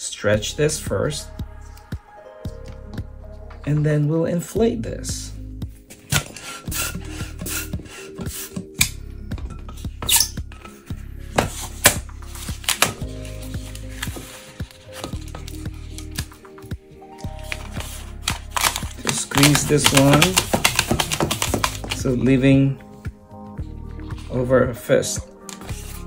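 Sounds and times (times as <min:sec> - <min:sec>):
background music with chords: 0:00.0 - 0:26.0
balloon squeaking and clicking: 0:10.0 - 0:10.6.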